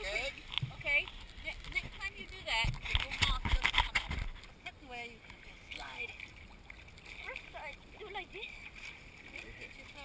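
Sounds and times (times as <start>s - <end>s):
small waves lapping and sloshing: 0.0s - 10.0s.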